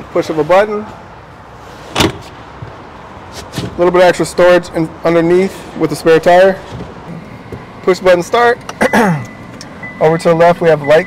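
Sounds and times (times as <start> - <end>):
car seatback folding and knocking: 2.0 - 2.8.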